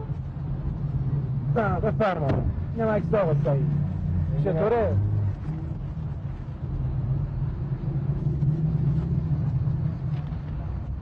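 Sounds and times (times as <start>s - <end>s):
car engine rumbling: 0.0s - 11.0s.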